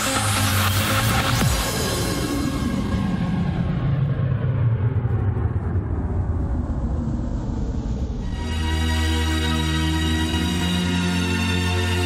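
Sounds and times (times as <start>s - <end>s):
trance music: 0.0s - 4.9s, 8.2s - 12.0s
rumbling noise sweep falling in pitch: 0.0s - 9.2s.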